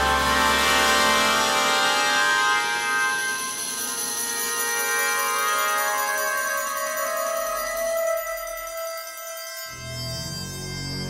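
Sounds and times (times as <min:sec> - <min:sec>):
low bass note: 0:00.0 - 0:01.7
orchestral sustained chords: 0:00.0 - 0:08.9.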